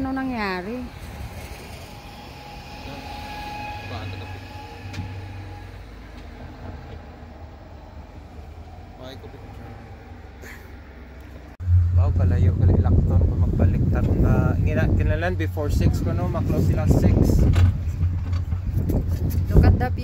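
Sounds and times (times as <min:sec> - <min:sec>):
chairlift low rumble: 0:11.6 - 0:20.0.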